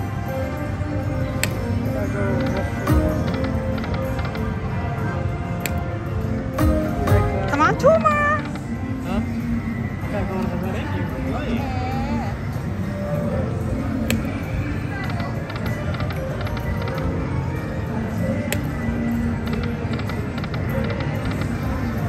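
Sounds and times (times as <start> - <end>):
background music: 0.0 - 22.0
chatter: 10.1 - 17.2.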